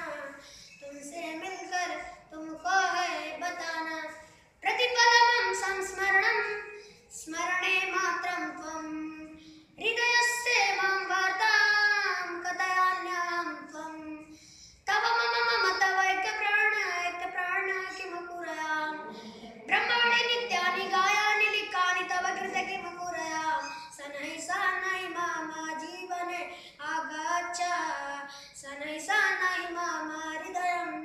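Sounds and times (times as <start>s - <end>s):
boy singing unaccompanied: 0.0s - 31.0s.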